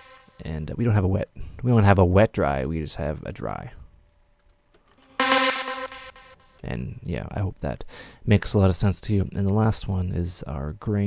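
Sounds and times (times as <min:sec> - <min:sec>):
synthesized pitched tone: 0:00.0 - 0:00.3, 0:05.0 - 0:06.6.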